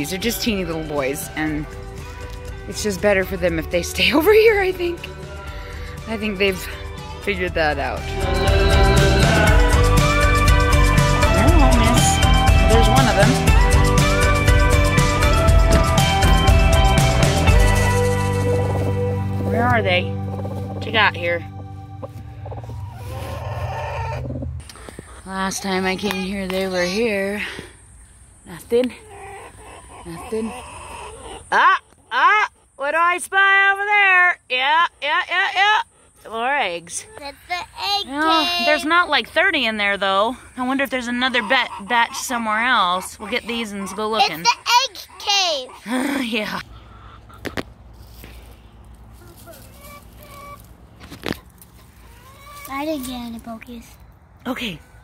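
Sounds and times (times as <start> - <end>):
chickens clucking: 0.0 - 33.8, 35.8 - 54.2
hen wavering call: 5.0 - 24.8
rustling of dry brush: 22.2 - 23.4, 47.9 - 53.5.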